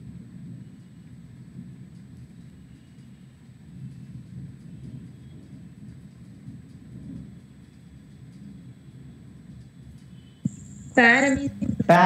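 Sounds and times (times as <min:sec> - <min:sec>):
faint high-pitched tone: 0:10.2 - 0:11.7.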